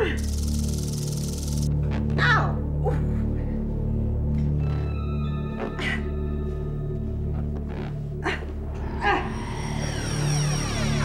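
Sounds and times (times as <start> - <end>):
low droning music: 0.0 - 11.0.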